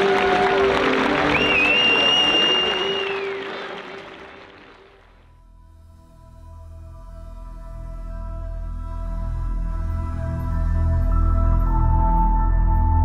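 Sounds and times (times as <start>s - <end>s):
long high whistle: 0.0s - 3.6s
crowd applauding and cheering: 0.0s - 5.3s
soft ambient music: 0.0s - 13.0s.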